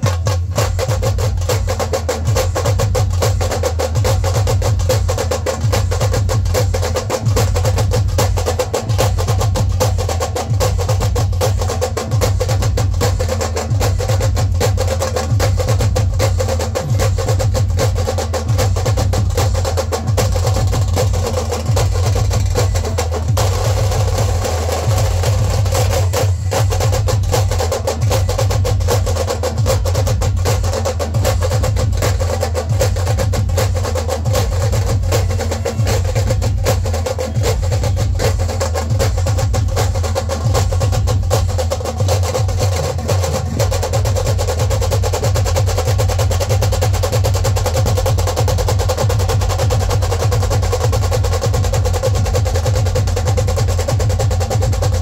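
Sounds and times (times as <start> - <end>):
sustained low bass: 0.0 - 47.1
deep drum beat: 0.0 - 55.0
rapid stick strokes on drums: 0.0 - 55.0.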